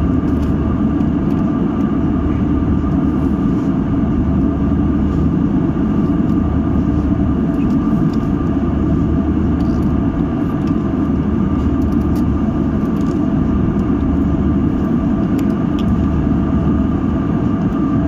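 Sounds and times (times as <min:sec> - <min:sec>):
airliner cabin roar: 0:00.0 - 0:18.0
faint steady hum tones: 0:00.0 - 0:18.0.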